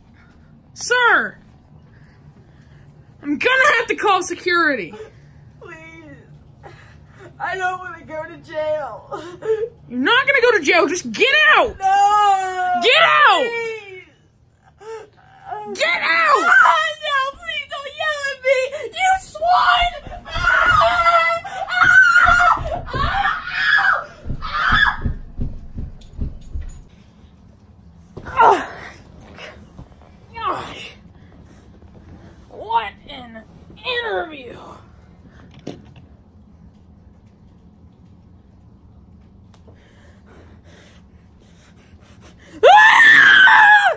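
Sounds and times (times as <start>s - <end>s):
boy wailing and screaming: 11.8s - 13.9s, 15.4s - 17.1s, 18.8s - 25.1s, 42.6s - 43.9s
running footstep thuds: 19.7s - 23.5s, 24.1s - 26.9s.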